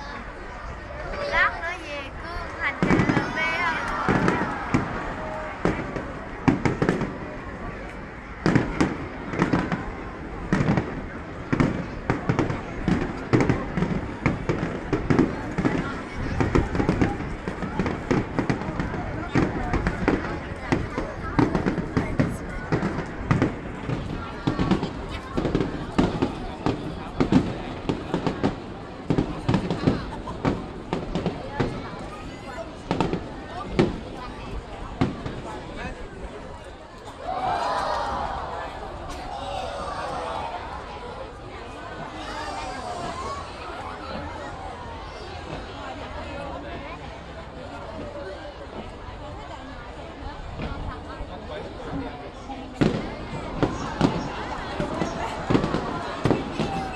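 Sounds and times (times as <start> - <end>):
fireworks bursting: 1.7 - 31.9, 52.8 - 56.9.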